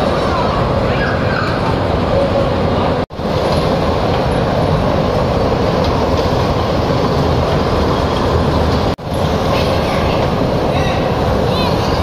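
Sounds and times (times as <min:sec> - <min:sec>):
kiddie train rumbling on track: 0:00.0 - 0:12.0.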